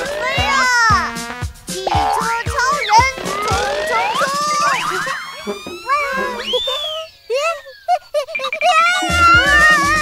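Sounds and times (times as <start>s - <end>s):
bright cartoon music: 0.0s - 7.0s, 8.5s - 10.0s
cheerful voice: 0.0s - 10.0s
pitch sliding sound effects: 2.6s - 7.3s.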